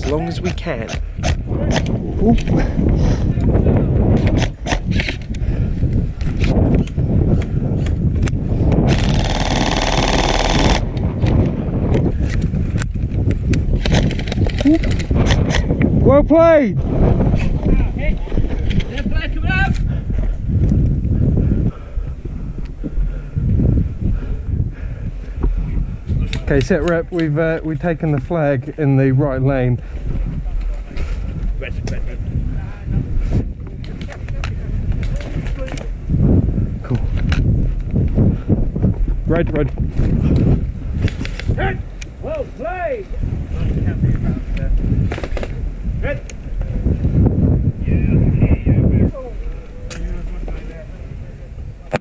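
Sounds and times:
wind rumble on microphone: 0:00.0 - 0:52.0
airsoft gun full-auto burst: 0:08.9 - 0:10.8.

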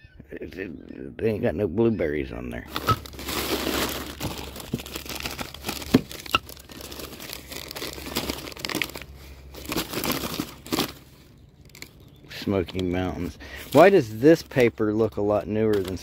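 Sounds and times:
newspaper rustling and crinkling: 0:02.7 - 0:12.0.

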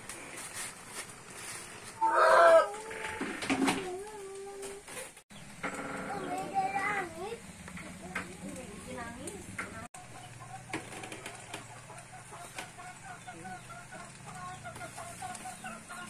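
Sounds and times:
rooster crowing: 0:02.0 - 0:03.2.

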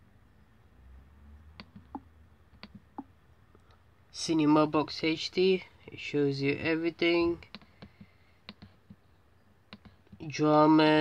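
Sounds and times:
computer mouse clicks: 0:01.6 - 0:03.8, 0:07.4 - 0:09.1, 0:09.7 - 0:10.2.

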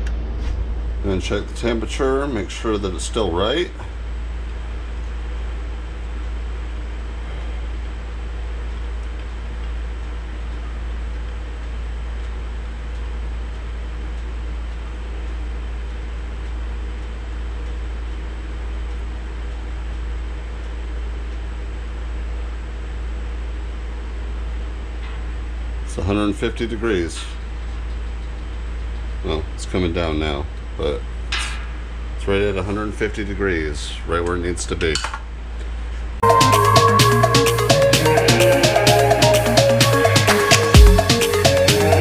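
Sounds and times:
mechanical hum and rumble: 0:00.0 - 0:36.3
held tones: 0:36.2 - 0:42.0.

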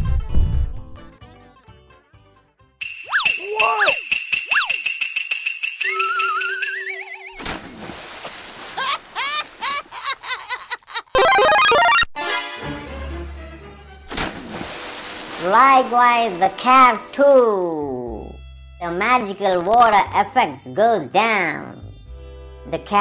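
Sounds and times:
music: 0:00.0 - 0:07.1, 0:11.4 - 0:23.0
cartoon sound effects: 0:05.8 - 0:07.4, 0:11.2 - 0:12.1
rising warbling whistle: 0:05.8 - 0:07.4.

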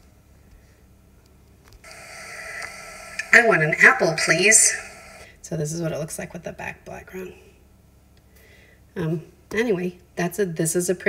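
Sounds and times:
steady hiss: 0:01.8 - 0:05.2.

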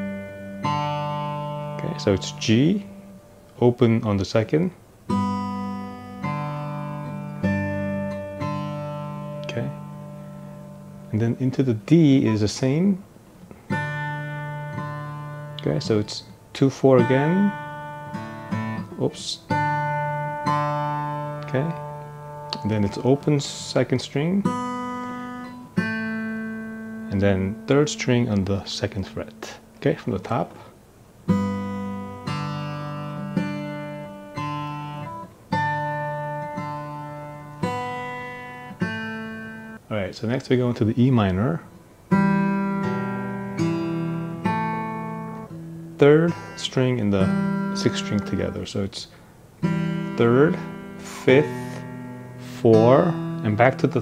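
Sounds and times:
acoustic guitar chord ringing: 0:00.0 - 0:39.9, 0:41.0 - 0:54.0.

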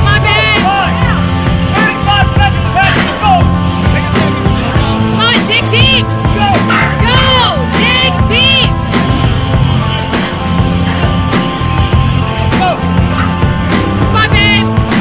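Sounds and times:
loud rock music: 0:00.0 - 0:15.0
steady drum beat: 0:00.0 - 0:15.0.

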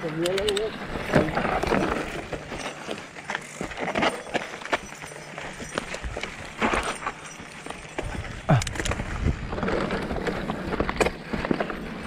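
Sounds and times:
bike rattling over rocks: 0:00.0 - 0:12.0
bike tyres crunching on gravel: 0:00.7 - 0:12.0.

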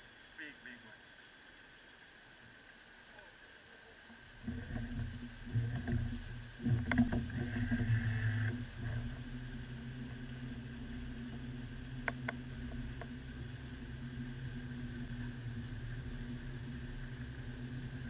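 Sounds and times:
outboard motor running: 0:04.3 - 0:18.0.

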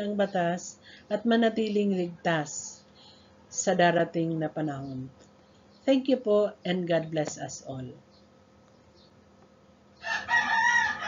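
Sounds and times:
rooster crowing: 0:10.0 - 0:11.0.

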